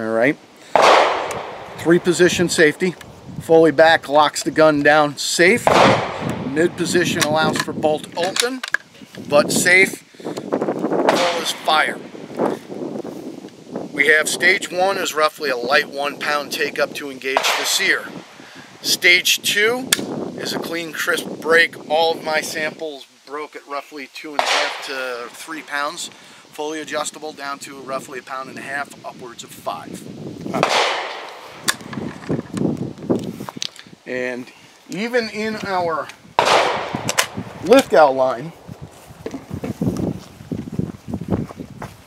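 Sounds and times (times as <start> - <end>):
wind noise on microphone: 0.0 - 23.0, 24.4 - 42.0
sharp clicks: 0.8 - 1.9
rustling noise: 10.4 - 14.0, 29.9 - 42.0.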